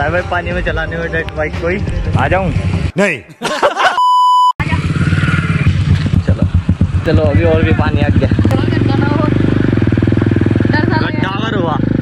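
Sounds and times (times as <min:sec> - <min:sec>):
electronic test-tone beep: 0:04.0 - 0:04.6
dirt bike engine running: 0:04.6 - 0:12.0.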